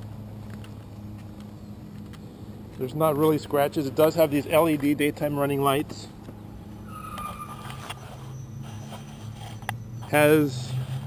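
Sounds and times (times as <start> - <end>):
faint thin whine: 6.6 - 10.4.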